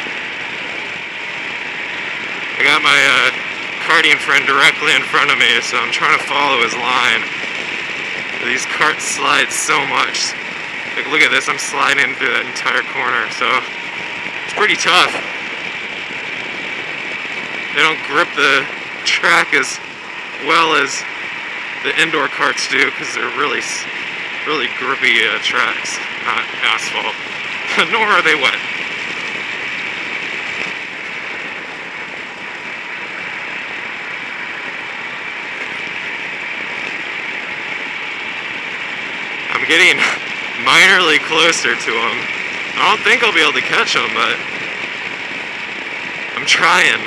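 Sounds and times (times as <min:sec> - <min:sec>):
go-kart engine running: 0:00.0 - 0:47.0.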